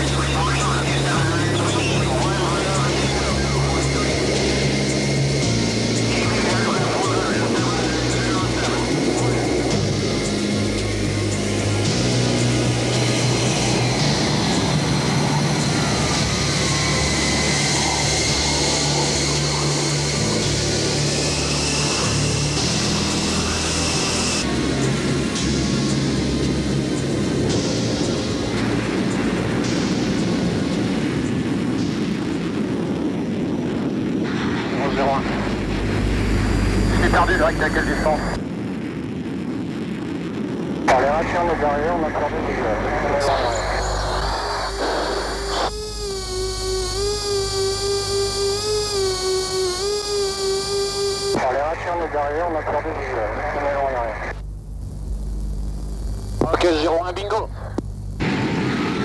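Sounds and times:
cockpit engine and air noise: 0:00.0 - 0:59.0
high jet engine whine: 0:00.0 - 0:59.0
brief radio voices: 0:06.1 - 0:09.6, 0:34.8 - 0:35.6, 0:36.8 - 0:38.4, 0:40.9 - 0:45.7, 0:51.3 - 0:54.4, 0:56.4 - 0:57.8
warbling electronic tone: 0:42.3 - 0:52.1.

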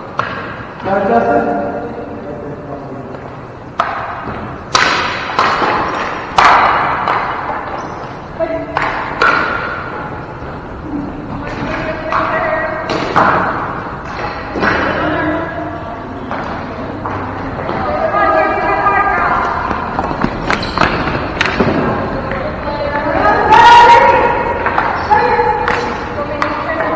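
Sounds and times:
hockey sticks hitting ball: 0:00.0 - 0:00.9, 0:03.1 - 0:10.6, 0:11.3 - 0:15.4, 0:16.2 - 0:22.5, 0:23.2 - 0:26.9.

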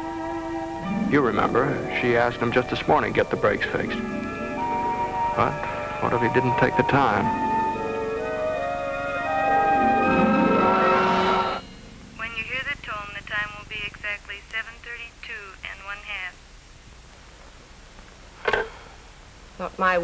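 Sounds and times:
orchestral film music: 0:00.0 - 0:11.6
tinny voice over telephone: 0:12.2 - 0:16.4.

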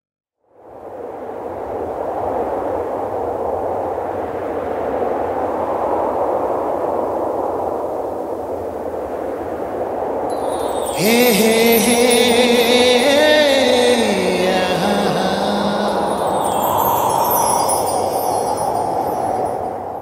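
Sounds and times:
high shimmering sparkle: 0:10.3 - 0:20.0.

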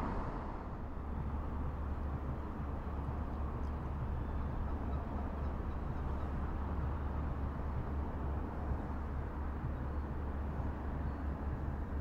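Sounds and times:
low outdoor rumble: 0:00.0 - 0:06.6.

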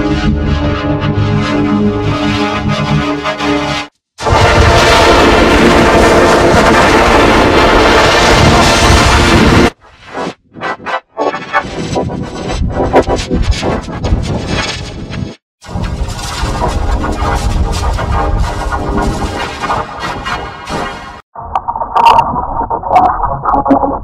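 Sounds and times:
loud distorted noise: 0:04.2 - 0:24.0
choppy stuttering bursts: 0:04.3 - 0:15.4
pitched synth melody: 0:10.5 - 0:14.4.

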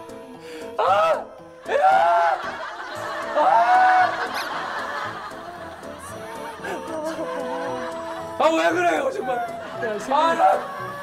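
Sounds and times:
background music: 0:00.0 - 0:11.0
people laughing: 0:01.9 - 0:11.0.

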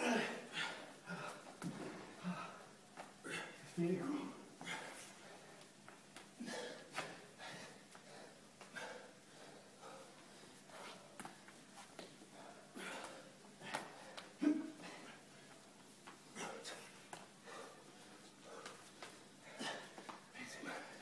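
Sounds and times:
men breathing heavily: 0:00.0 - 0:21.0.

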